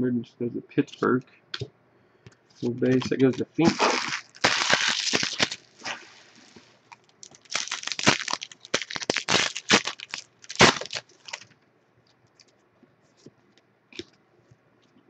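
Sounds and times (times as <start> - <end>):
foil wrappers crinkling and tearing: 3.0 - 11.5.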